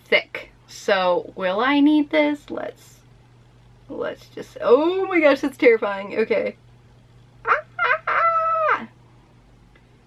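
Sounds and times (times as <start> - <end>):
woman squealing: 7.5 - 9.0.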